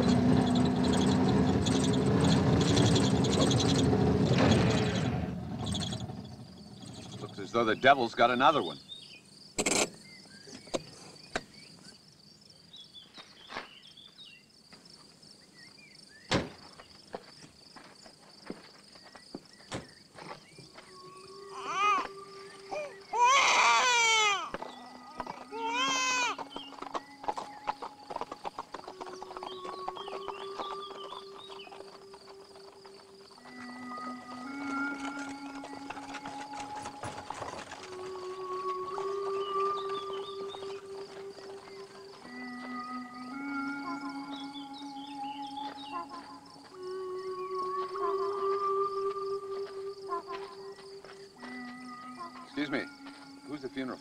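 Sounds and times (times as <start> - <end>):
slow film score music: 20.2 - 54.0
infant crying: 21.4 - 26.4.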